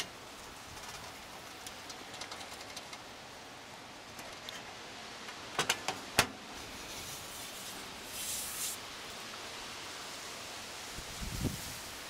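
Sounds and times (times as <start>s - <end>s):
steady background hiss: 0.0s - 12.0s
metal vent cover clicks and taps: 5.5s - 6.3s.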